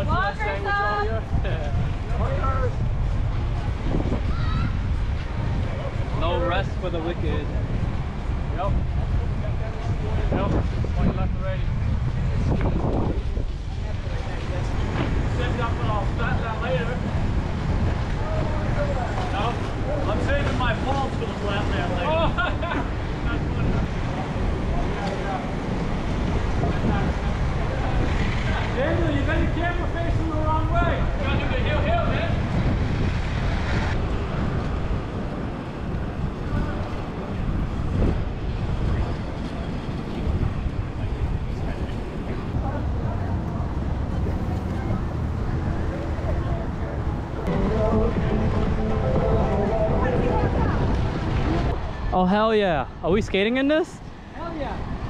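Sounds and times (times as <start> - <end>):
wind rumble on microphone: 0.0 - 52.2, 54.0 - 55.0
skate wheels rolling on asphalt: 0.1 - 52.1
indistinct voices: 36.0 - 53.6.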